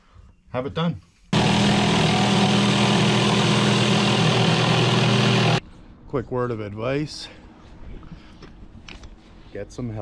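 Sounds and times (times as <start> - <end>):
jigsaw cutting wood: 1.4 - 5.6.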